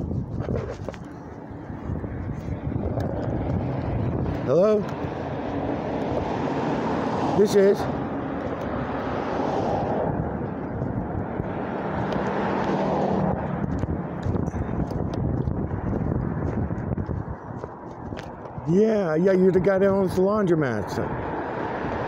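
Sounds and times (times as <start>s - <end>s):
cars passing on busy street: 0.0s - 22.0s.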